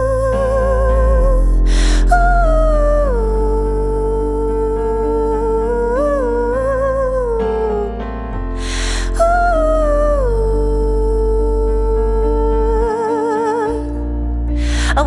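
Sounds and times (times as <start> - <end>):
keyboard and synthesizer chords: 0.0 - 15.0
low bass: 0.0 - 15.0
woman singing wordless vocal: 0.0 - 15.0.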